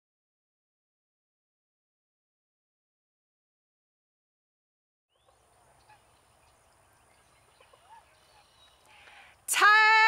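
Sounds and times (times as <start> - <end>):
distant bird calls: 5.1 - 9.5.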